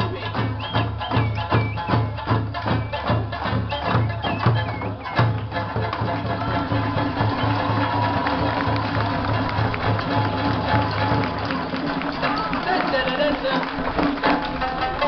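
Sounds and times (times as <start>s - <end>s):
voices: 0.0s - 14.1s
folk music with hand drums: 0.0s - 15.0s.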